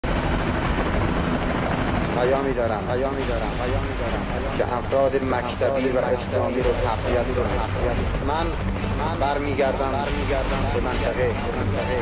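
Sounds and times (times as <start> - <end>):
helicopter flying past: 0.0 - 12.0.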